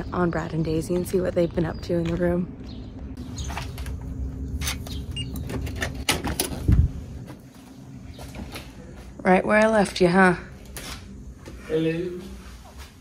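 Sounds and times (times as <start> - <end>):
steady low hum: 0.0 - 13.0
door opening and shutting: 4.6 - 6.9.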